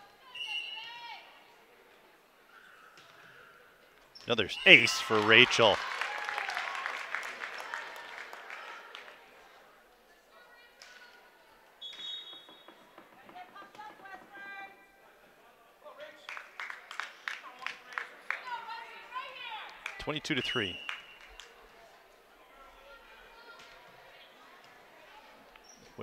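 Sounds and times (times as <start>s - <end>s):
voices echoing in hall: 4.3s - 5.8s, 12.9s - 25.6s
spectators cheering and applauding: 4.4s - 9.2s.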